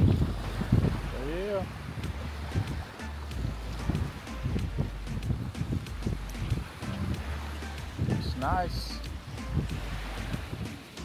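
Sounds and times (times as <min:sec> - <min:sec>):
background music with bass: 0:00.0 - 0:11.0
wind buffeting microphone: 0:00.0 - 0:11.0.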